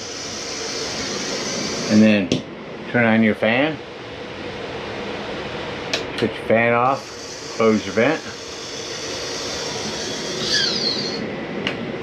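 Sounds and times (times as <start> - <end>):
roof vent fan whirring: 0.0 - 12.0.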